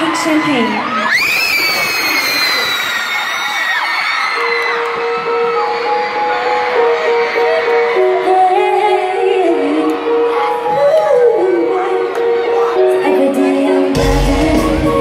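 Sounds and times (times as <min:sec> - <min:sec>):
crowd screaming and cheering: 0:00.0 - 0:15.0
live pop music: 0:04.0 - 0:15.0.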